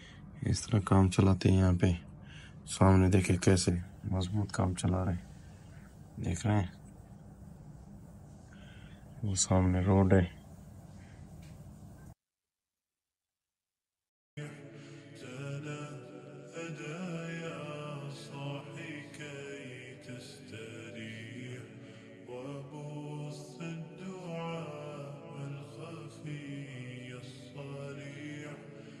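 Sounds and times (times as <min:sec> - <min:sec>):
person singing chant-like melody: 0:14.4 - 0:29.0.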